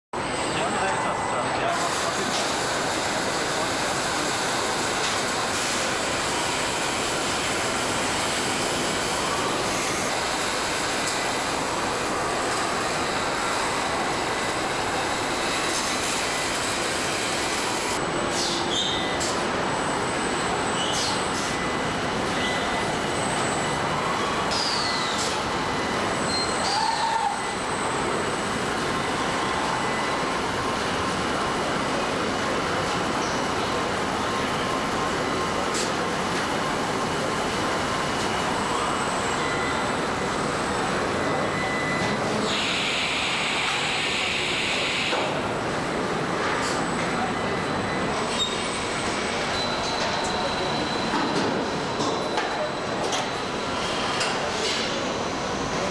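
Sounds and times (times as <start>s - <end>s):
factory machine din: 0.2s - 55.9s.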